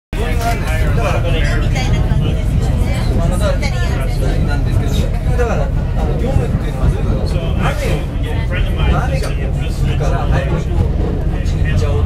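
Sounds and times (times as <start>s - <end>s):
moving vehicle rumble: 0.2s - 12.0s
people talking: 0.2s - 12.0s.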